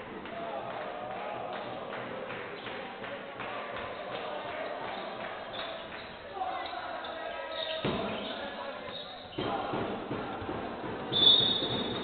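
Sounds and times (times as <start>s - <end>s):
players calling: 0.2s - 12.0s
basketball bouncing on wooden court: 8.9s - 12.0s
referee's whistle: 11.1s - 12.0s.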